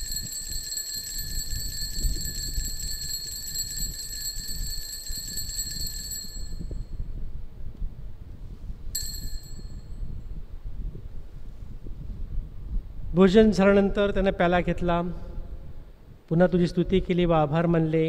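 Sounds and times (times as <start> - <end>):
altar bells ringing rapidly: 0.0 - 6.9, 9.0 - 10.0.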